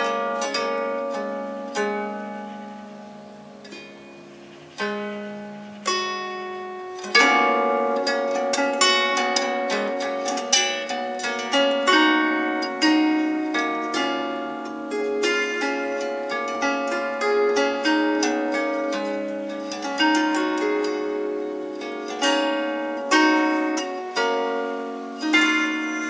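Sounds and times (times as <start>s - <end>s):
plucked zither notes: 0.0s - 26.0s.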